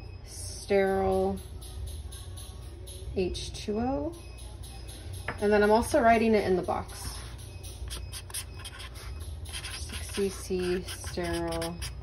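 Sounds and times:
marker writing on cardboard: 0:07.1 - 0:12.0.

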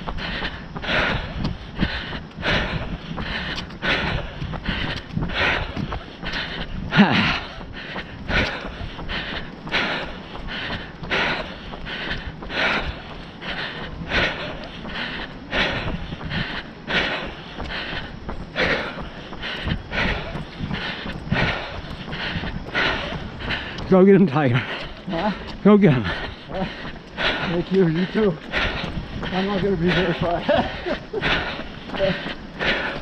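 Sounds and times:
heavy rhythmic breathing: 0:00.0 - 0:33.0.

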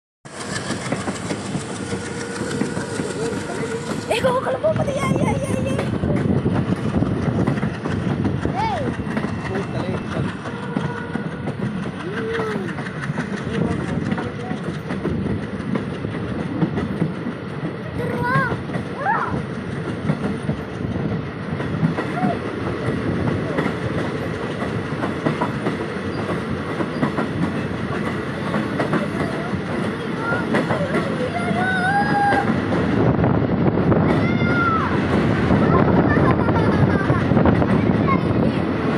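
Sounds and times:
train rattles and clicks: 0:00.3 - 0:38.9
train wheels rumbling: 0:00.3 - 0:38.9.

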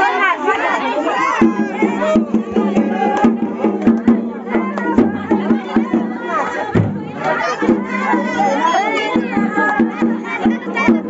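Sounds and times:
crowd shouting and singing: 0:00.0 - 0:11.0
loud lively music: 0:01.2 - 0:11.0
sharp drumbeats: 0:01.4 - 0:11.0.

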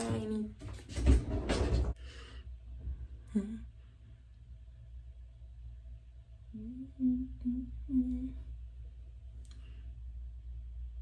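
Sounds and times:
low background hum: 0:00.0 - 0:11.0
woman humming: 0:03.2 - 0:03.8, 0:06.5 - 0:08.5.

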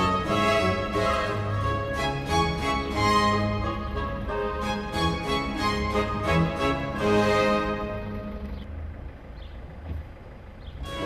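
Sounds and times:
background music: 0:00.0 - 0:08.6
motorboat engine droning: 0:00.0 - 0:11.0.

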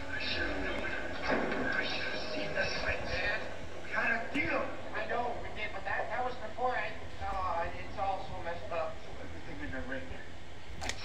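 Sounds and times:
film dialogue from television: 0:00.0 - 0:11.0
steady low hum: 0:00.0 - 0:11.0.

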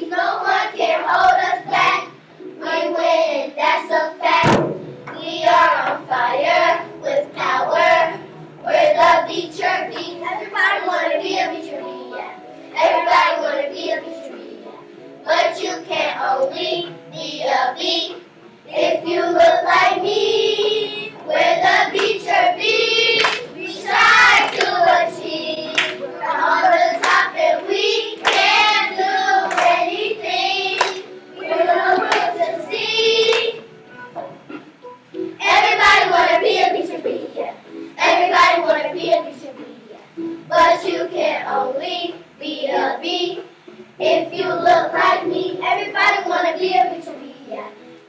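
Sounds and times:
children singing: 0:00.0 - 0:33.7, 0:35.4 - 0:39.7, 0:40.5 - 0:47.4
hand claps: 0:22.0 - 0:22.2, 0:23.2 - 0:23.5, 0:24.4 - 0:24.8, 0:25.7 - 0:26.0, 0:27.0 - 0:27.3, 0:28.2 - 0:28.6, 0:29.4 - 0:29.8, 0:30.8 - 0:31.1, 0:32.0 - 0:32.3, 0:33.3 - 0:33.6.

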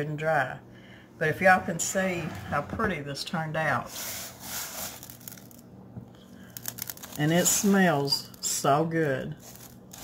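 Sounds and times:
fingers raking through coarse salt: 0:03.8 - 0:05.6, 0:06.6 - 0:08.1, 0:09.3 - 0:10.0.

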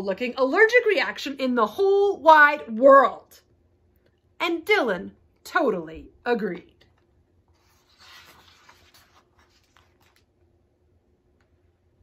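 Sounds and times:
book page turning: 0:06.9 - 0:10.5.

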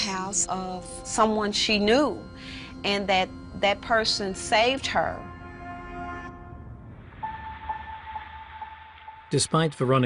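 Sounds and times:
high electronic tone with pulses: 0:00.0 - 0:09.7
low rumble: 0:01.0 - 0:09.5.

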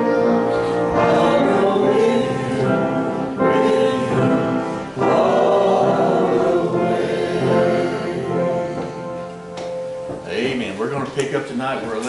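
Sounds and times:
congregation singing a hymn: 0:00.0 - 0:10.1.

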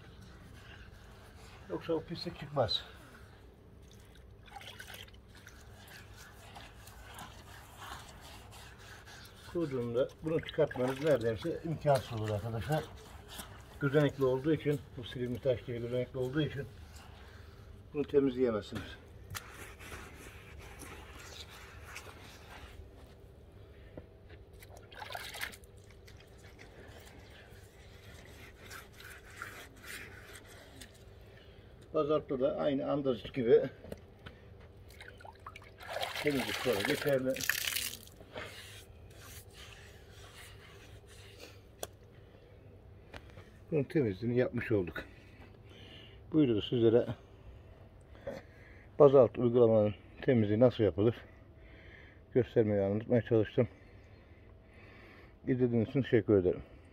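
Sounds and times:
damp sponge wiping paving slabs: 0:00.0 - 0:03.4, 0:05.1 - 0:23.3, 0:26.2 - 0:31.1, 0:36.2 - 0:41.9.

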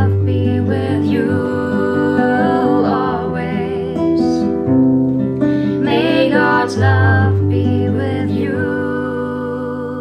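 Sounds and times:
woman singing slow song: 0:00.0 - 0:04.7, 0:05.6 - 0:10.0
nylon-string guitar chords: 0:00.0 - 0:10.0.

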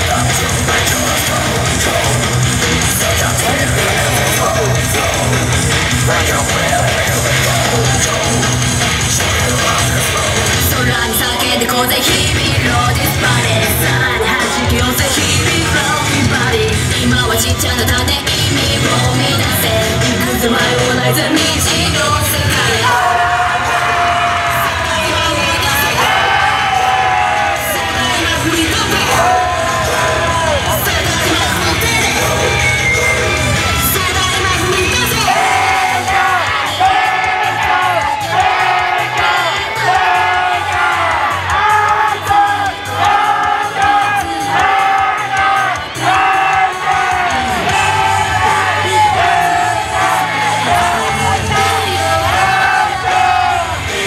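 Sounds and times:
fans yelling: 0:00.0 - 0:54.0
woman singing into a microphone: 0:10.6 - 0:23.8.

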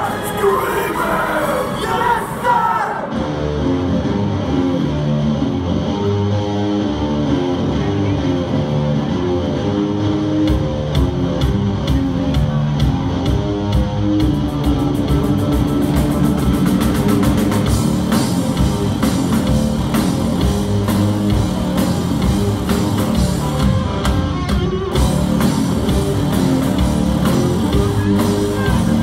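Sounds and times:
rock band playing: 0:00.0 - 0:29.0
drum roll: 0:14.2 - 0:29.0.

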